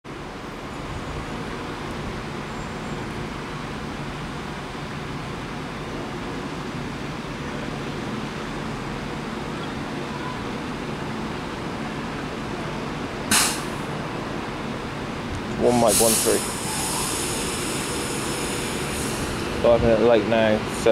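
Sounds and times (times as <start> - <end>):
electric train hum and whirr: 0.1 - 20.9
short loud burst of noise: 13.3 - 13.8.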